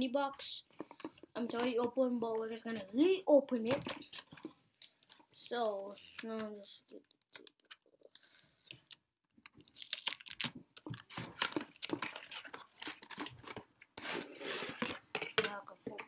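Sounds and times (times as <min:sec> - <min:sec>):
cardboard packaging crackling: 0:09.6 - 0:16.0.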